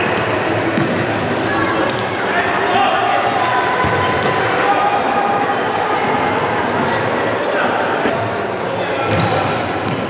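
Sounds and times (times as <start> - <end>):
hubbub of voices in echoing hall: 0.0 - 10.0.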